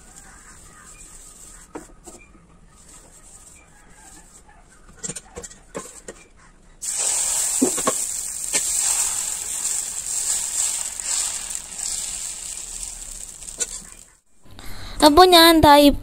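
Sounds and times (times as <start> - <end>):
steady hiss: 6.8 - 14.2.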